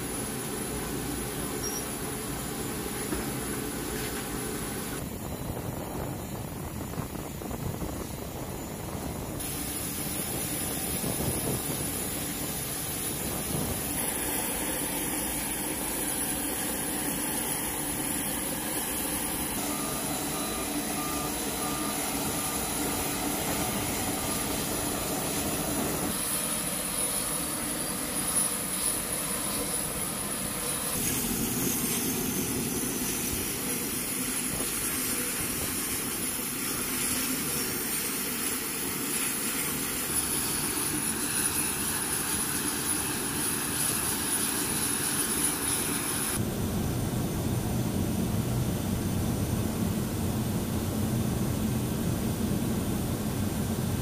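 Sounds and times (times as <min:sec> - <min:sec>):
aircraft turbine whine: 0:00.0 - 0:54.0.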